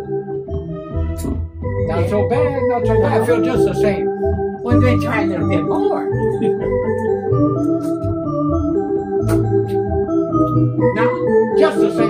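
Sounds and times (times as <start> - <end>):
organ music: 0.0 - 12.0.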